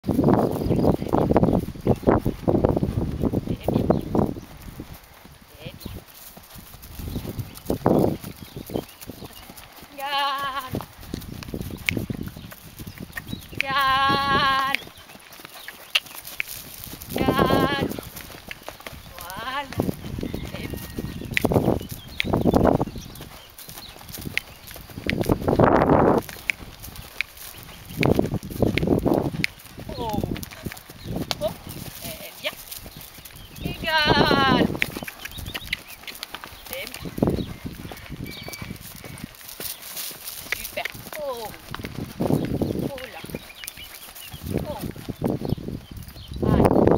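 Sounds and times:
horse hooves clip-clopping on soft ground: 0.0s - 46.9s.

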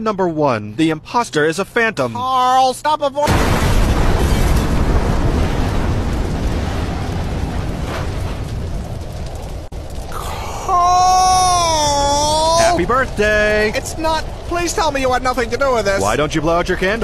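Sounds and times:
explosion with rumble: 3.3s - 10.4s, 11.2s - 17.0s
voice crying out: 10.1s - 12.9s.

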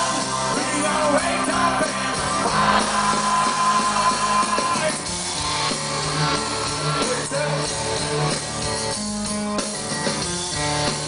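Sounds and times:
acoustic rock band playing: 0.0s - 11.0s.

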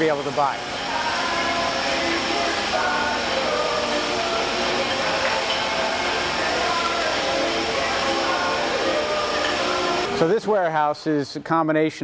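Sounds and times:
bottling machinery running: 0.0s - 10.5s.

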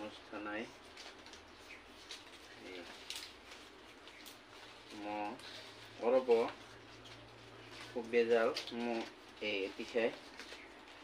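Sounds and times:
palm leaves rustling and crinkling: 0.0s - 11.0s.

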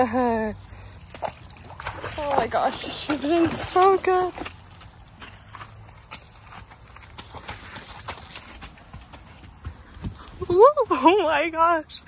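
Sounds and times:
horse hooves thudding: 1.1s - 11.9s.

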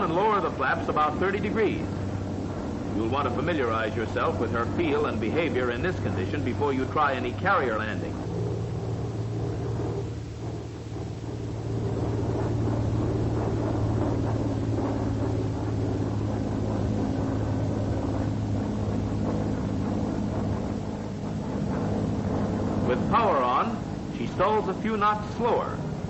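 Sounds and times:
aircraft engine droning: 0.0s - 26.0s.

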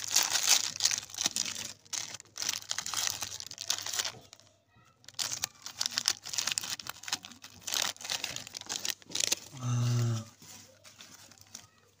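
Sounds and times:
snack wrapper crinkling: 0.0s - 12.0s.

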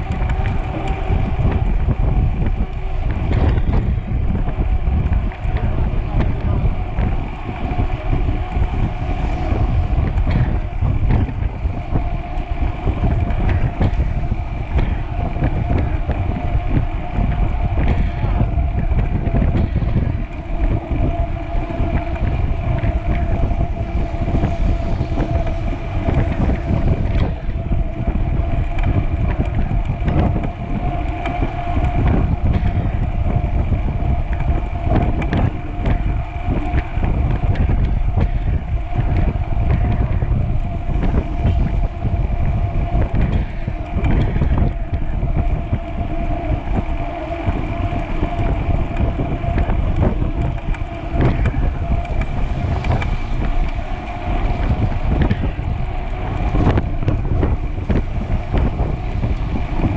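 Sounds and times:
bike tyres humming on pavement: 0.0s - 59.9s
wind buffeting microphone: 0.0s - 59.9s.

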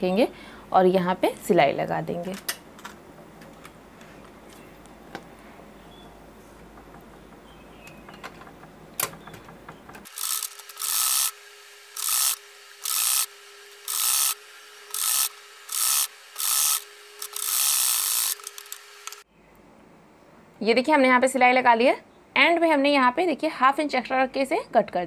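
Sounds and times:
small clicks: 14.9s - 19.2s.

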